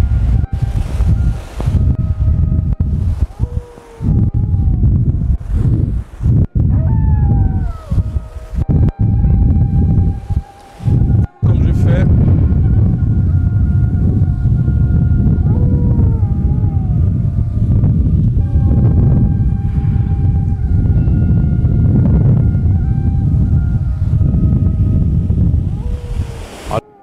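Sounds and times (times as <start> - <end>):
faint whistle-like tones: 0.0 - 4.5, 5.3 - 27.0
wind rumbling on microphone: 0.0 - 27.0
surf breaking on beach: 25.8 - 27.0.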